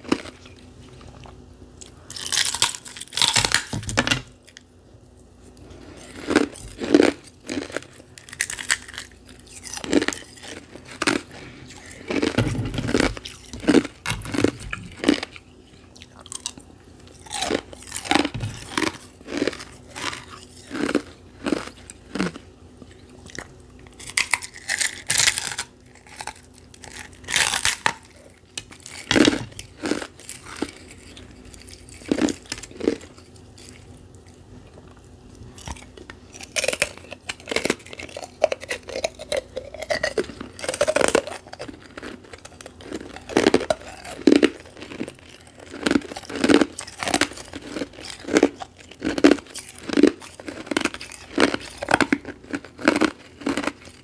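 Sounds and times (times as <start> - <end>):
ice crunching while chewed: 0.0 - 4.7, 5.4 - 54.0.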